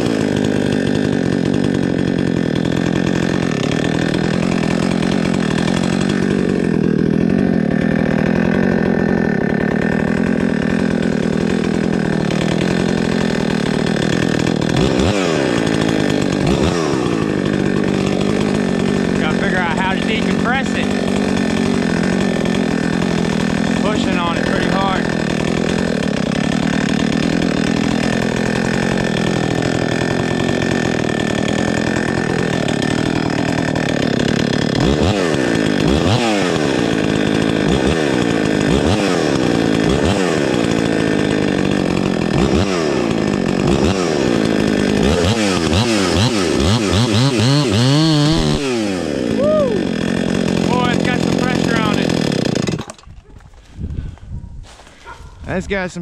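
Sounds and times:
chainsaw revving: 0:00.0 - 0:56.0.

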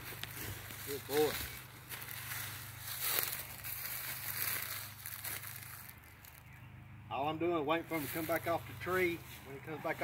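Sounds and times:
footsteps on dry leaves and gravel: 0:00.0 - 0:06.8, 0:07.6 - 0:10.0.

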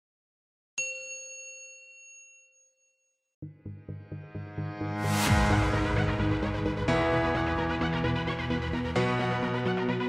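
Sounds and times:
bell-like chime ding: 0:00.8 - 0:03.3.

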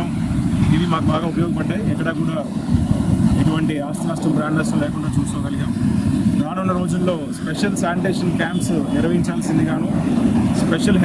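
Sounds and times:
man speaking: 0:00.0 - 0:02.6, 0:03.4 - 0:05.8, 0:06.4 - 0:10.0, 0:10.6 - 0:11.0
steady low rumble: 0:00.0 - 0:11.0.

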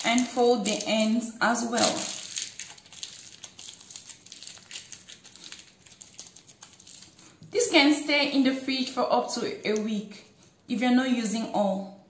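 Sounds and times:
parchment paper crinkling: 0:00.0 - 0:07.5.

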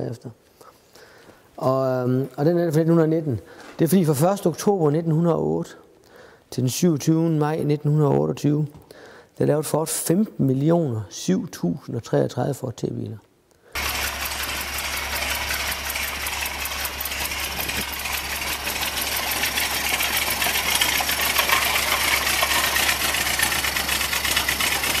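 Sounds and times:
car engine running: 0:13.8 - 0:25.0.

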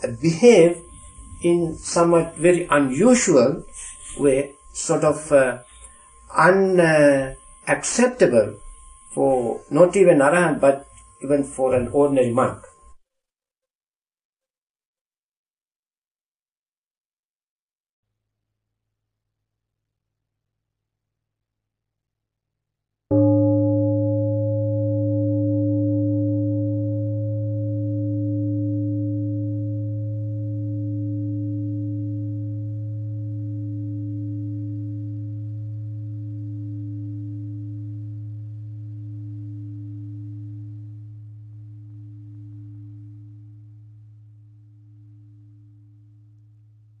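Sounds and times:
deep meditation bell ringing: 0:00.0 - 0:13.0, 0:23.1 - 0:46.8.

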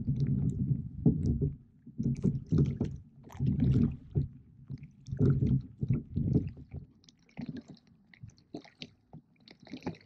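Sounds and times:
small splashes: 0:08.4 - 0:10.0.

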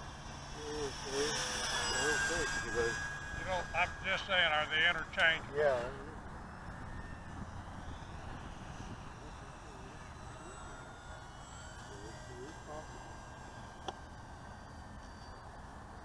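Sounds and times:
model plane motor whine: 0:00.0 - 0:16.0.

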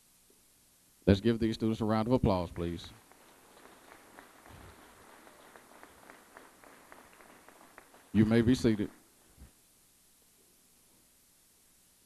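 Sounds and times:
scattered hand claps: 0:02.6 - 0:09.1.

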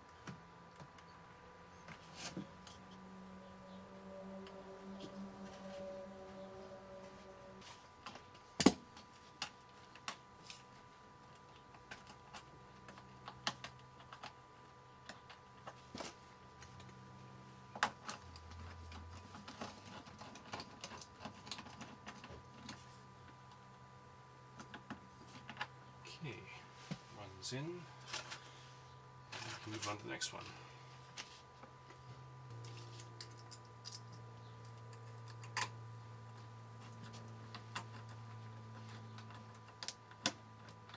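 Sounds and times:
faint steady hum: 0:00.0 - 0:40.9.

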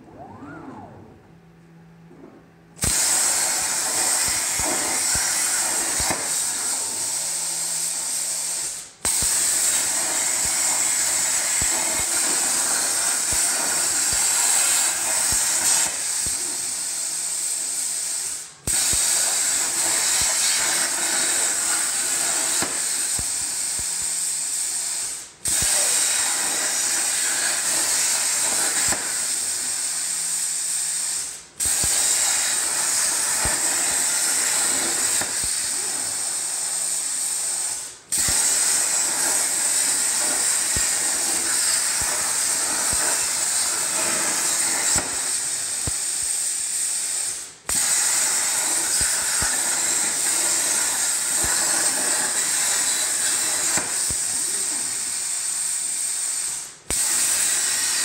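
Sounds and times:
plasma torch hissing and whining: 0:02.7 - 0:58.0.

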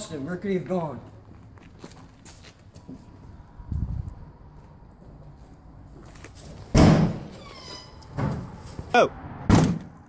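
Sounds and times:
door banging: 0:06.7 - 0:08.6, 0:09.5 - 0:10.0.

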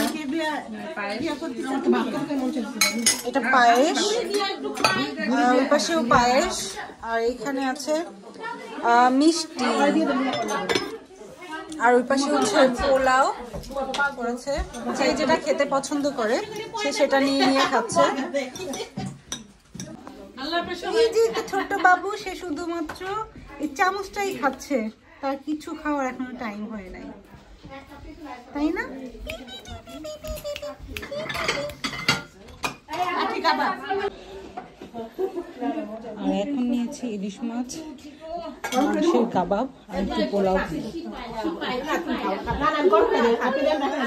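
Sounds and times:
plates and cutlery clinking: 0:01.7 - 0:06.8, 0:09.6 - 0:20.2, 0:29.6 - 0:33.5, 0:38.6 - 0:39.3
cutlery clinking on dishes: 0:02.4 - 0:05.2, 0:10.2 - 0:11.1, 0:18.4 - 0:20.2, 0:30.3 - 0:33.0, 0:38.6 - 0:39.2
person speaking: 0:29.1 - 0:31.9.

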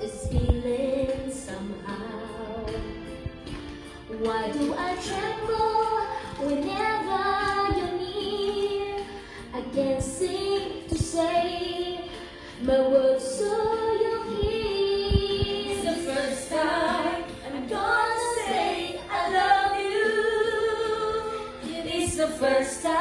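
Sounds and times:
women singing a slow ballad: 0:00.0 - 0:23.0
soft low thumps: 0:00.1 - 0:01.6, 0:13.5 - 0:15.8.

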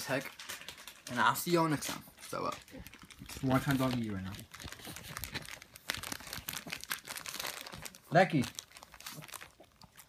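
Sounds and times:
foil crinkling: 0:00.0 - 0:10.0
dog licking inside a bag: 0:00.2 - 0:10.0.

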